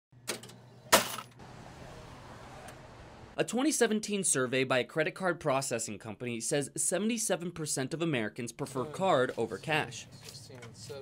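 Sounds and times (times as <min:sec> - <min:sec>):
cash register drawer clanking: 0:00.2 - 0:01.4.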